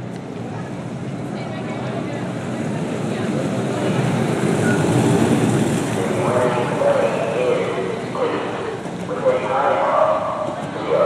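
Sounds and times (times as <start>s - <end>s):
wheels rumbling on asphalt: 0.0s - 11.0s
voices: 0.1s - 11.0s.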